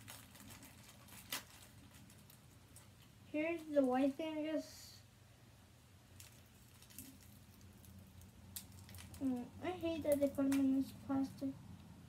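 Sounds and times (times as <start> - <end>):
plastic wrapping rustling: 0.0 - 4.1, 6.1 - 11.2.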